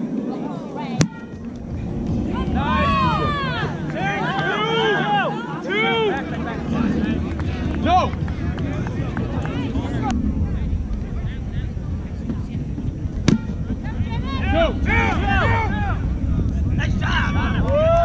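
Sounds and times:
wind on microphone: 0.0 - 18.0
players shouting: 1.0 - 10.1, 13.2 - 18.0.

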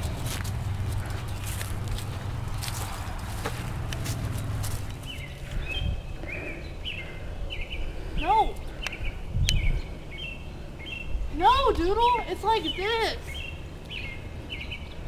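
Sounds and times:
footsteps outdoors: 0.0 - 9.2
low steady rumble: 0.0 - 12.2
bird chirping: 0.0 - 15.0.

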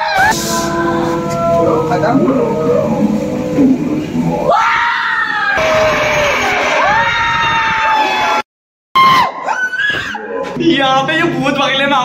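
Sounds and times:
people screaming: 0.0 - 3.0, 4.3 - 8.4, 9.0 - 10.5
people yelling: 0.0 - 3.0, 4.4 - 8.4.

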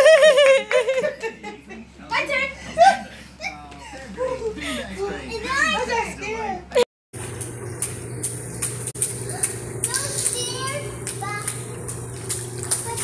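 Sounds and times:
steady hum: 7.2 - 13.0
water noise: 7.2 - 13.0.

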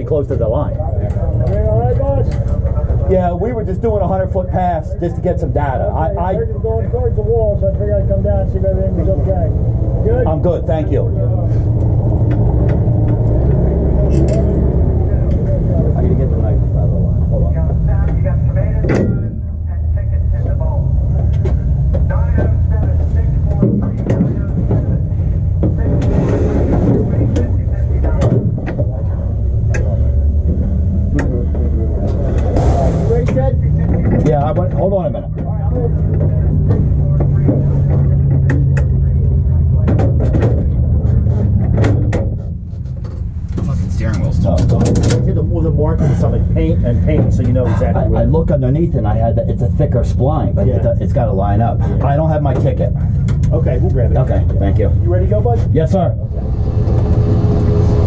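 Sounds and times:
car engine idling rumble: 0.0 - 58.0.

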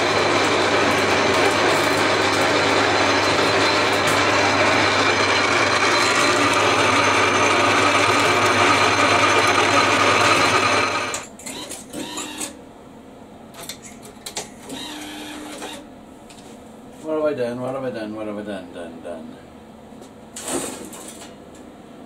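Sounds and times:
lathe running: 0.0 - 11.3
low motor hum: 0.0 - 11.3.

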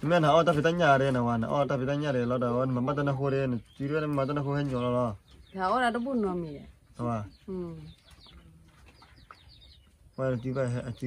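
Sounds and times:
two people talking quietly: 0.0 - 8.6, 10.1 - 11.0.

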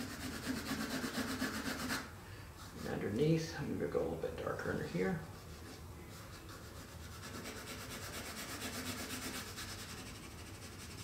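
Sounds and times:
pencil scratching on paper: 0.0 - 3.1, 5.2 - 11.0.

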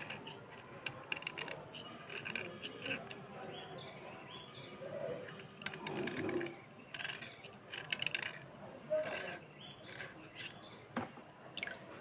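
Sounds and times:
blade scraping slate pencil: 0.0 - 3.4, 5.1 - 10.7.

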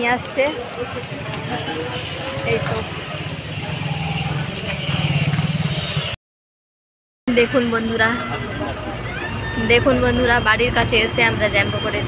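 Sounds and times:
busy street noise: 0.0 - 6.2, 7.3 - 12.0
vehicle engine running: 0.8 - 6.2.

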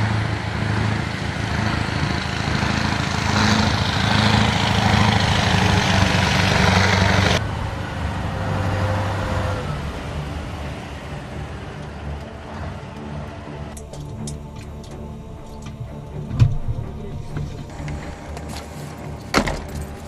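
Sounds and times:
heavy truck engines rumbling: 0.0 - 20.0.

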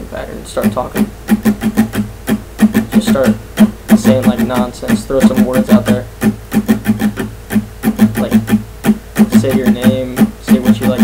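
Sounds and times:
muted acoustic guitar strumming: 0.0 - 11.0.

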